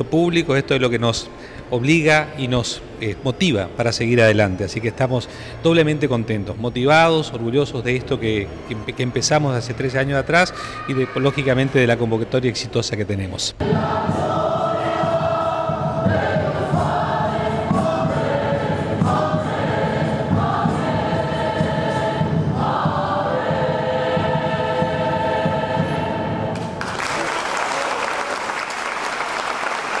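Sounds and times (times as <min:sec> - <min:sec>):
choir singing: 0:13.6 - 0:27.4
applause: 0:26.6 - 0:30.0.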